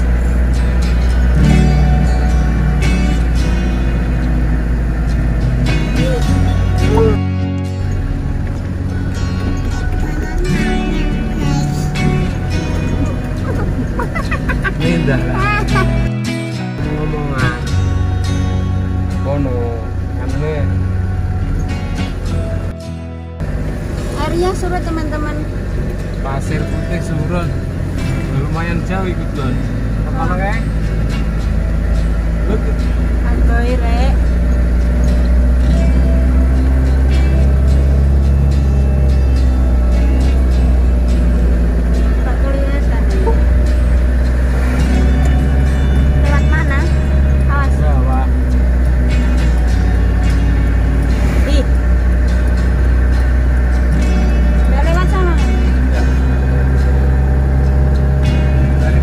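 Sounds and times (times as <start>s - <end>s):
car cabin engine and road rumble: 0.0s - 59.0s
person speaking: 13.3s - 16.1s.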